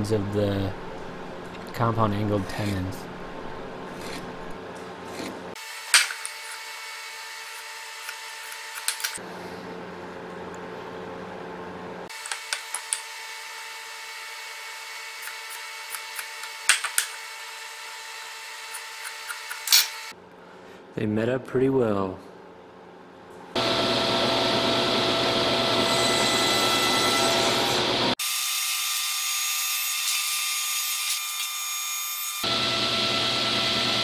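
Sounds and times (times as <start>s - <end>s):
steady hum: 0.0s - 5.6s
marking tool scratching wood: 3.9s - 4.4s, 5.1s - 5.4s.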